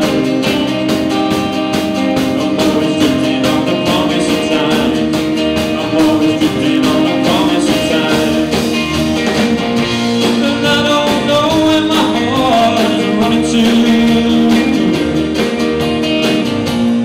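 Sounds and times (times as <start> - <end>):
acoustic guitar: 0.0 - 17.0
electric guitar: 0.0 - 17.0.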